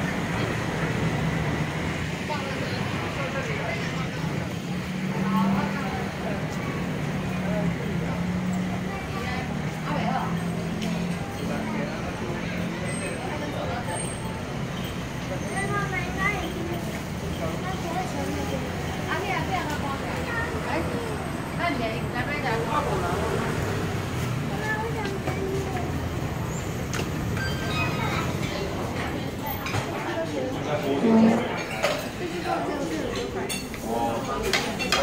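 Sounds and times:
indistinct voices: 0.0 - 35.0
low restaurant rumble: 0.0 - 35.0
road traffic noise: 0.0 - 35.0.

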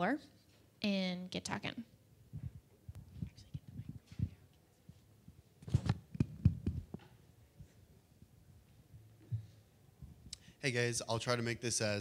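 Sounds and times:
microphone handling thumps and clicks: 2.3 - 7.7, 9.2 - 10.3.

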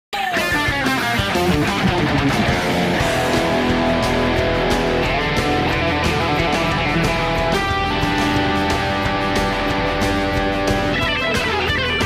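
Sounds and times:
electric guitar rapidly picked notes: 0.3 - 12.0.

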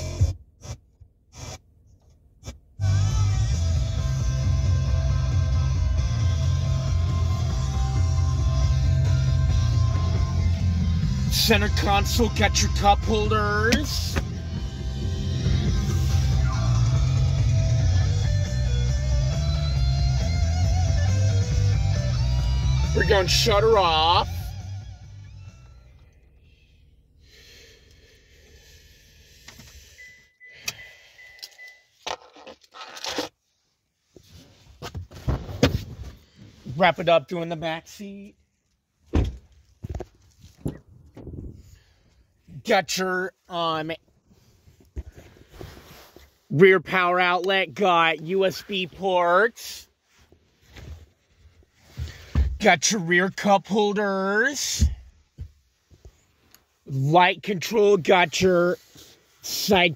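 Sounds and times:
music from radio speakers: 0.0 - 0.8, 2.4 - 26.2
steady high beep: 30.0 - 31.9.

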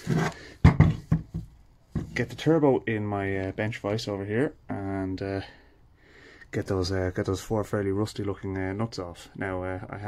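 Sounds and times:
turbocharger knocking on workbench: 0.6 - 2.2.

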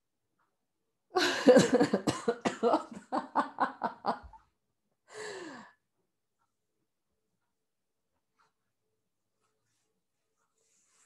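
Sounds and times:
woman laughing: 1.2 - 4.4
breathy sigh: 5.1 - 5.8.

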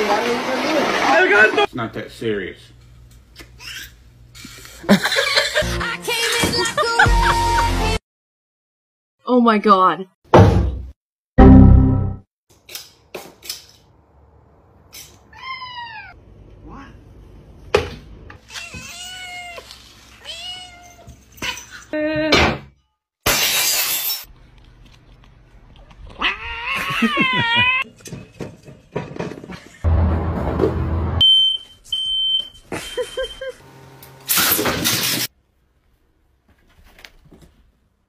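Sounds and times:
cat meowing: 15.3 - 17.0, 18.5 - 21.1, 26.1 - 27.8.

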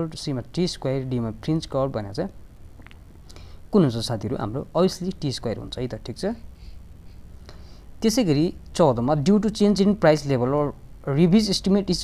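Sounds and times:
person speaking: 0.0 - 3.0, 3.7 - 6.5, 8.0 - 12.0.

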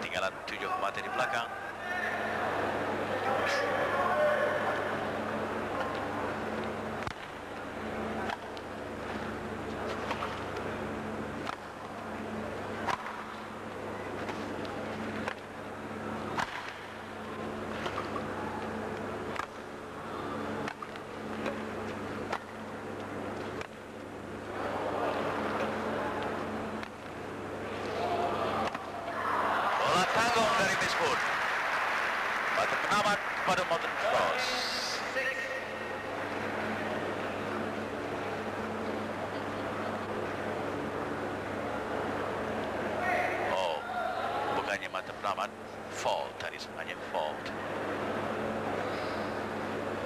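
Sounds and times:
low electrical hum: 0.0 - 50.0
rackets hitting shuttlecock: 8.2 - 9.2, 12.8 - 13.4, 16.3 - 16.9
crowd murmur: 24.4 - 32.8.

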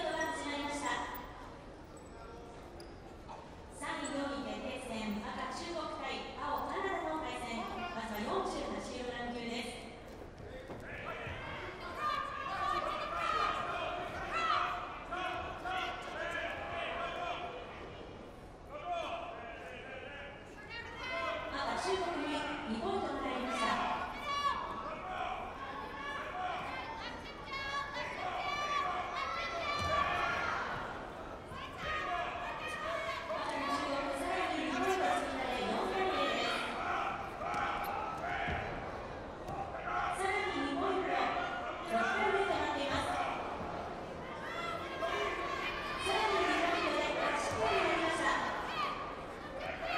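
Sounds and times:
people shouting in a large hall: 0.0 - 49.9.

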